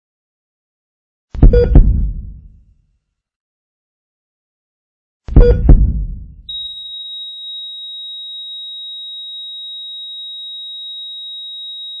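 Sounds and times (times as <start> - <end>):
deep boom: 1.4 - 2.6, 5.3 - 6.5
high-pitched electronic beep: 6.5 - 12.0.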